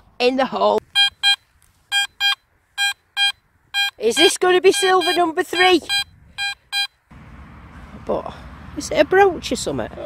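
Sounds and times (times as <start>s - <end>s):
metal detector high-pitched beeps: 0.9s - 7.0s.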